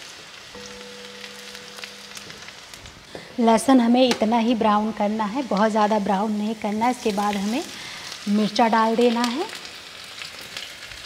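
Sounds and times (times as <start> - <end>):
garlic sizzling in hot oil: 0.0 - 11.0.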